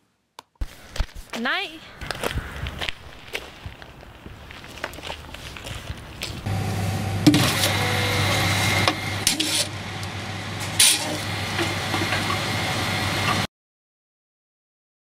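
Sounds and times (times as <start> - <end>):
footsteps on gravel: 0.6 - 6.5
vending machine humming: 6.4 - 13.5
machine clunking: 7.2 - 13.5.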